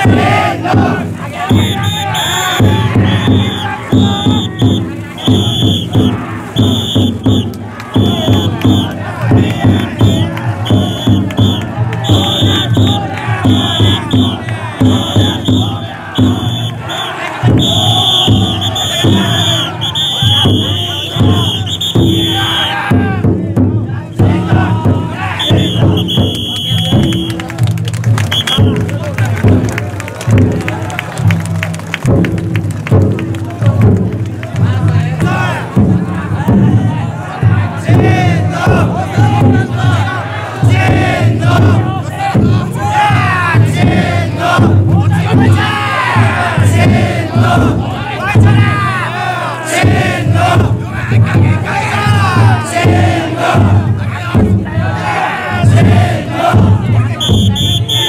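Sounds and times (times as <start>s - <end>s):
crowd shouting calls: 0.0s - 32.1s, 33.3s - 58.0s
big drum beating: 0.0s - 58.0s.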